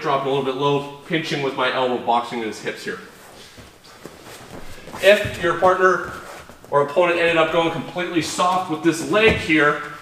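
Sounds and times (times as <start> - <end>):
shuffling on mats: 3.0 - 10.0.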